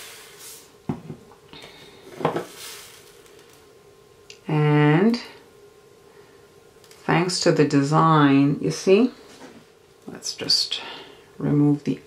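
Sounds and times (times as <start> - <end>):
sprinkles hissing and scattering: 2.1 - 3.6.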